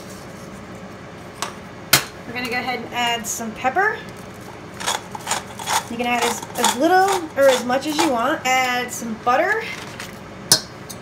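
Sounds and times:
kitchen items knocking: 0:04.8 - 0:08.3.

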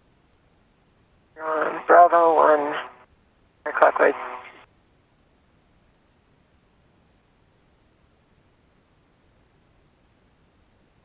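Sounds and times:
person speaking over radio: 0:01.4 - 0:02.9, 0:03.7 - 0:04.6.

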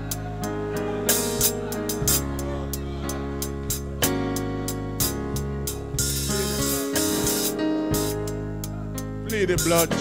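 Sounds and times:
church band music: 0:00.0 - 0:10.0.

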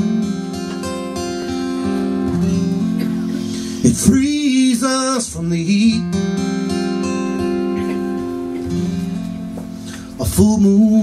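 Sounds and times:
slide resonator guitar: 0:00.0 - 0:10.2
acoustic guitar strumming: 0:00.0 - 0:11.0.

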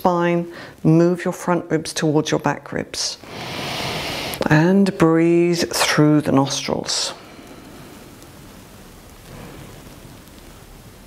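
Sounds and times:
room tone hiss: 0:00.0 - 0:11.0.

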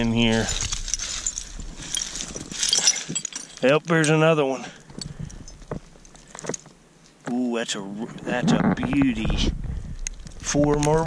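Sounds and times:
clicks of dirt and debris: 0:00.0 - 0:11.0.

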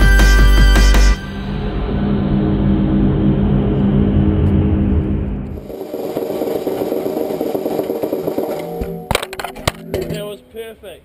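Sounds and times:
background music: 0:00.0 - 0:01.5
snare drum rolling on gravel: 0:05.6 - 0:10.2.

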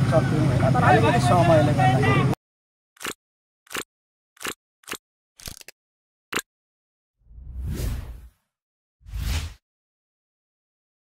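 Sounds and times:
whoosh with heavy low end: 0:07.2 - 0:08.3.

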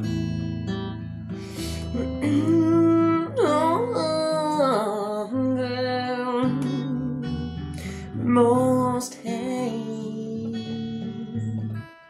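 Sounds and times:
acoustic guitar: 0:00.0 - 0:12.0
woman singing: 0:01.6 - 0:11.9.

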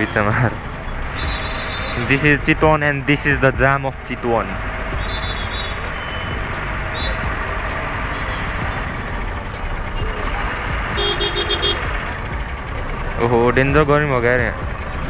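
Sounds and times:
traffic engines rumbling: 0:00.0 - 0:15.0
rapid pulsing horn: 0:04.9 - 0:09.1, 0:09.9 - 0:12.0
short horn toots: 0:11.0 - 0:11.8.

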